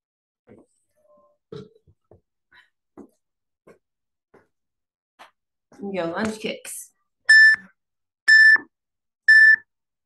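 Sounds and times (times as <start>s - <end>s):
short electronic beeps: 7.3s - 7.7s, 8.3s - 8.7s, 9.3s - 9.7s.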